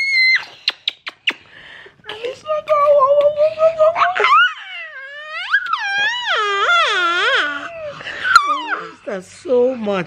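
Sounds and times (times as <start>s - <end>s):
girl squealing with laughter: 0.0s - 1.3s, 4.0s - 9.0s.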